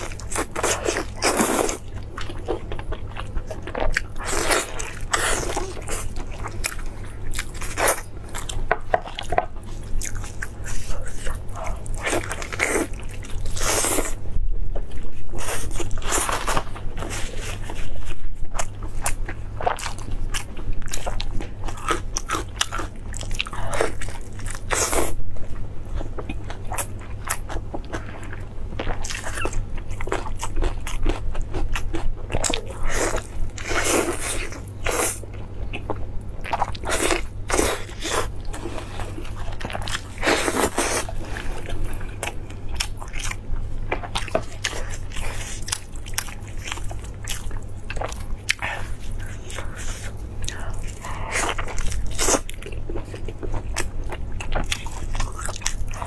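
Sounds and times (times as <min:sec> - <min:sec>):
steady low hum: 0:00.0 - 0:56.0
chewing meat with wet smacks: 0:25.9 - 0:56.0.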